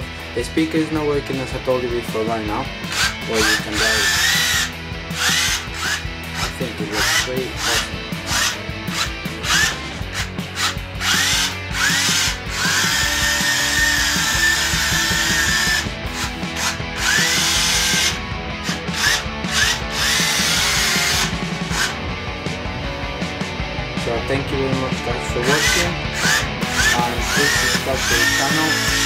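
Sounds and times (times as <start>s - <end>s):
electric motors whining: 2.7s - 23.6s, 25.0s - 29.0s.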